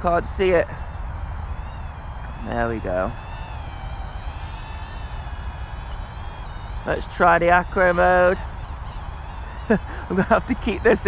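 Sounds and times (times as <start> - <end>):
quadcopter motors whining: 0.0 - 11.0.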